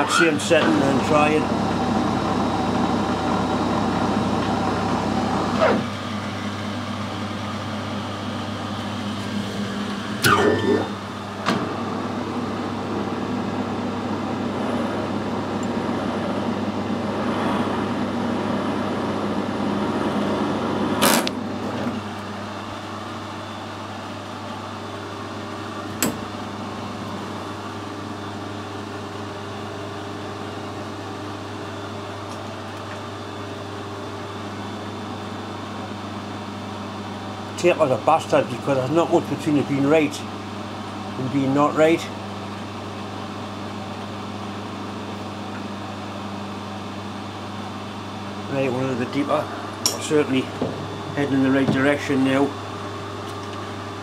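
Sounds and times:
metal lathe running: 0.0s - 54.0s.

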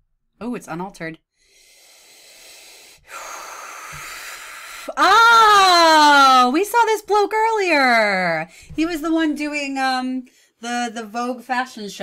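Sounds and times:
woman breathing and gasping: 1.4s - 5.0s.

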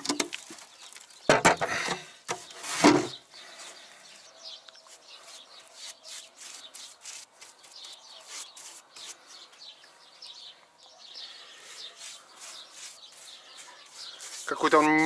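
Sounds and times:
birds chirping: 0.0s - 15.0s
paintbrush brushing on wood: 4.8s - 9.5s, 11.5s - 15.0s.

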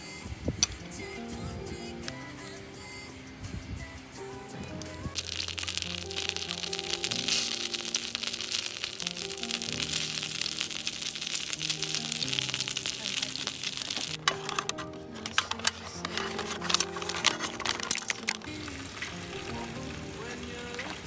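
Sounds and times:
background music: 0.0s - 21.0s
food sizzling in a pan: 5.0s - 21.0s.

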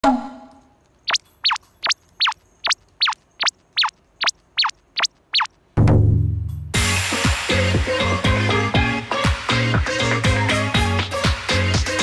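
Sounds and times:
short chirps sweeping in pitch: 1.0s - 5.5s.

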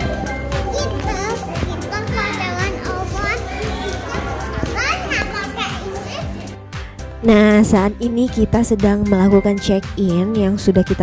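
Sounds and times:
children chattering and calling out: 0.0s - 6.6s
background music with steady beat: 0.0s - 11.0s.

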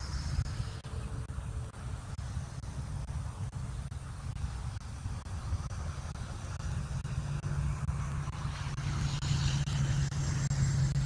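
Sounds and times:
truck engine hum: 0.0s - 11.0s.

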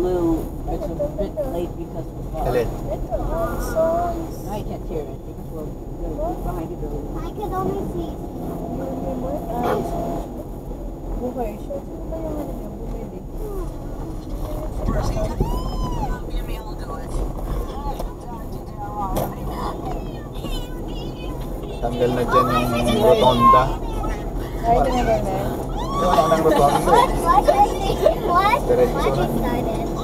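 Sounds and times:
people talking: 0.0s - 10.2s, 11.1s - 30.0s
road and engine hum: 0.0s - 30.0s
people laughing: 21.3s - 29.3s.

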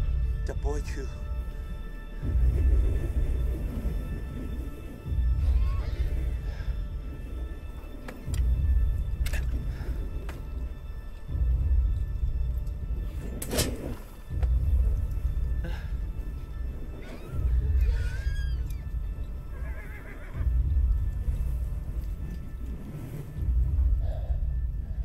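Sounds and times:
film score with deep low pulse: 0.0s - 25.0s
horses whinnying: 16.9s - 20.6s.

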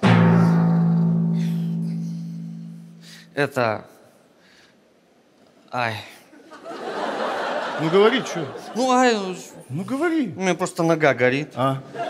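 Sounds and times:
low note ringing: 0.0s - 3.4s.

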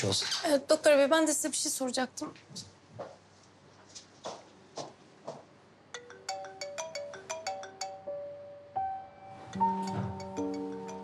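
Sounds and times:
mobile phone ringtone: 6.0s - 8.8s.

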